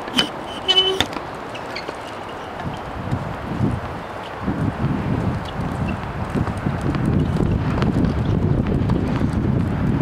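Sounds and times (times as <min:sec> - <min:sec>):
short high horn toot: 0:00.1 - 0:01.2.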